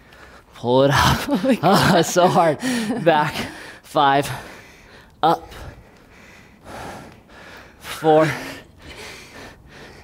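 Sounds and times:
person breathing heavily: 2.4 - 10.0.

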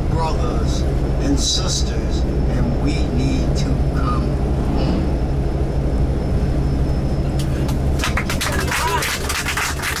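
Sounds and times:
bus engine drone: 0.0 - 10.0.

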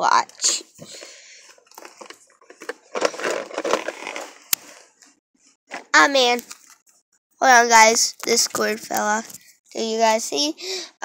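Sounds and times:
plastic toy car rustling: 0.4 - 6.8.

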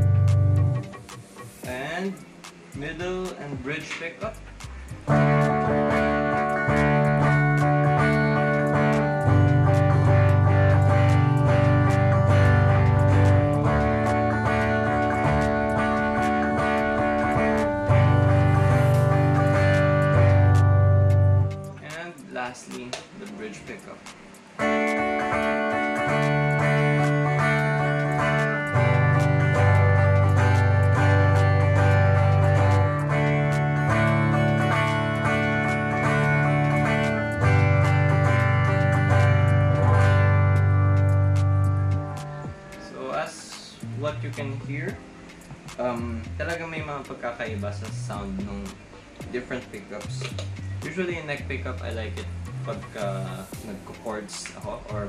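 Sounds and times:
electric guitar chords: 0.0 - 21.9, 22.7 - 47.0.

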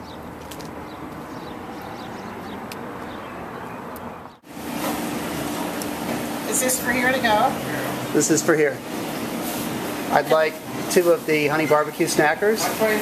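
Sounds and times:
outdoor traffic noise: 0.0 - 13.0.

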